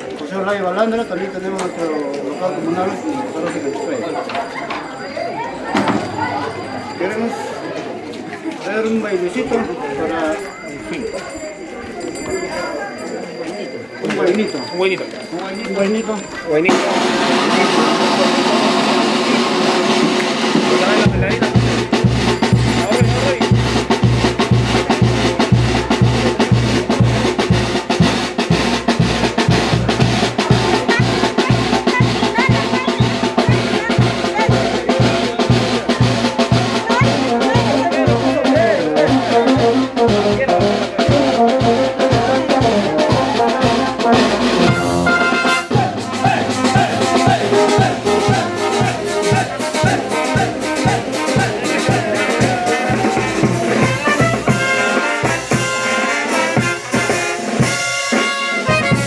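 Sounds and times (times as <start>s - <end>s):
brass band playing dance tune: 16.7s - 59.0s
drum beat: 16.7s - 59.0s.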